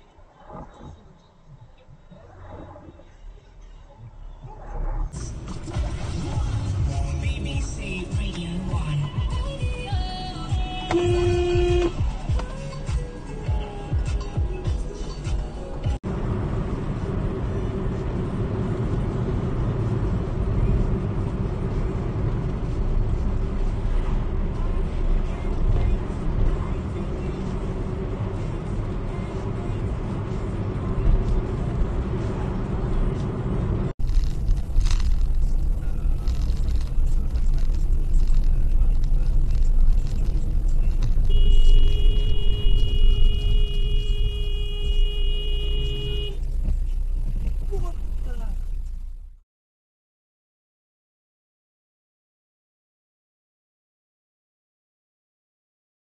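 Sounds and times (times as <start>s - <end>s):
car engine hum: 0.0s - 49.4s
tyre road noise: 0.0s - 49.4s
vehicle horn blast: 10.6s - 12.2s, 41.2s - 46.4s.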